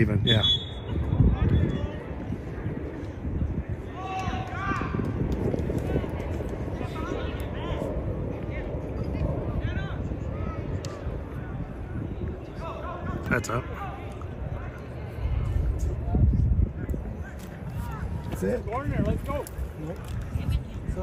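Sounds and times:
steady low rumble: 0.0s - 21.0s
players and spectators shouting: 3.7s - 5.2s.

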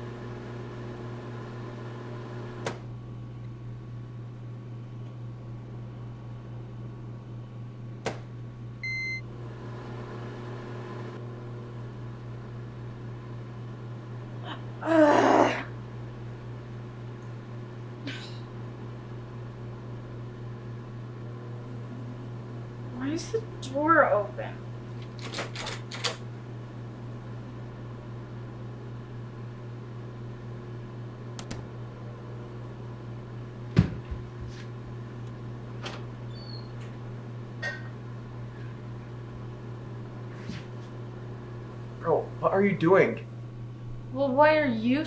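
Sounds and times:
microwave oven humming: 0.0s - 45.0s
short beep: 8.8s - 9.2s.

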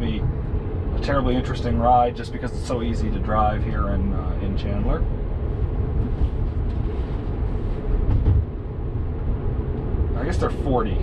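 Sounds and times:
road and tyre rumble in car: 0.0s - 11.0s
car bump: 8.0s - 8.7s.

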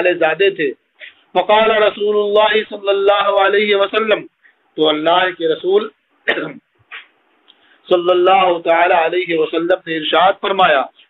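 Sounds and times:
man talking: 0.0s - 6.6s, 7.9s - 11.0s
man clearing throat: 6.3s - 7.0s.

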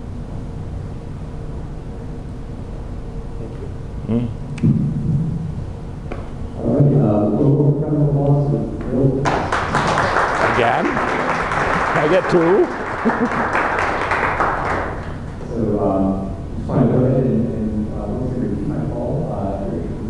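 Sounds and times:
audience applauding: 9.2s - 15.3s.

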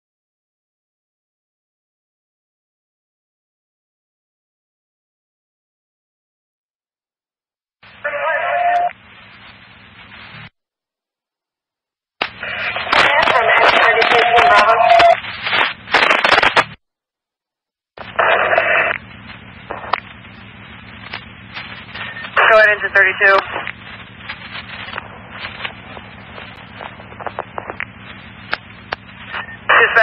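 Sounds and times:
scanner radio transmissions: 7.8s - 10.5s, 12.2s - 16.8s, 18.0s - 30.0s
steady radio tone: 7.8s - 10.5s, 12.2s - 16.8s, 18.0s - 30.0s
radio static and hum: 7.8s - 10.6s, 12.2s - 16.8s, 18.0s - 30.0s.

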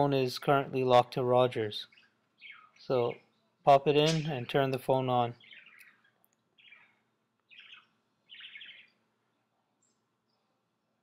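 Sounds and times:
short bird chirps: 1.8s - 3.5s, 5.4s - 9.1s.

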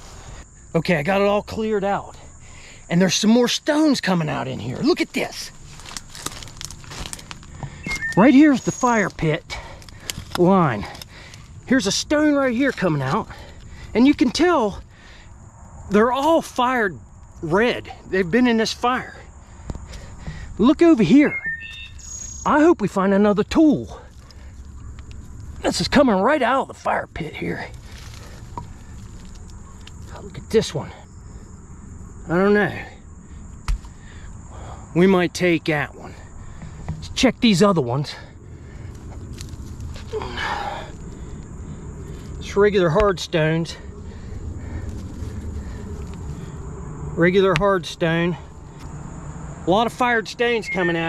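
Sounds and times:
high-pitched insect drone: 0.0s - 9.8s, 17.0s - 22.9s, 40.2s - 51.0s
soil scraping and rustling: 4.4s - 14.4s, 26.8s - 30.3s, 38.7s - 41.2s, 44.2s - 46.6s
footsteps in dry leaves: 5.5s - 8.0s, 27.8s - 29.5s, 38.9s - 40.2s.

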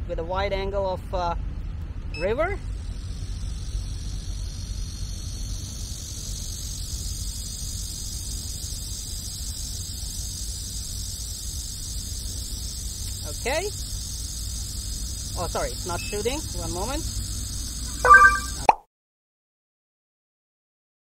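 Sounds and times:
low outdoor rumble: 0.0s - 18.7s
insect chorus buzzing: 2.2s - 18.7s.

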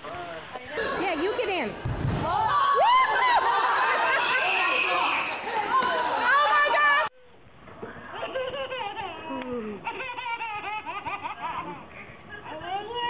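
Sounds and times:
children shouting and squealing: 2.3s - 7.1s
voices and laughter: 2.5s - 7.1s.

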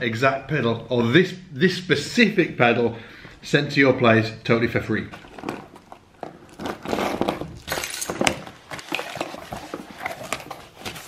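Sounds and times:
packing foam rustling: 5.1s - 11.0s
tape and cardboard ripping: 5.2s - 11.0s.

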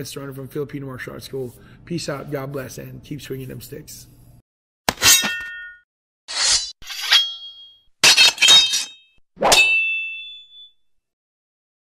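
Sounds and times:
sharp metallic clang: 4.9s - 10.8s.

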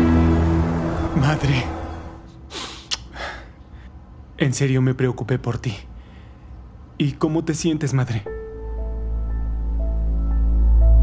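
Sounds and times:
person gasping: 2.5s - 3.6s.

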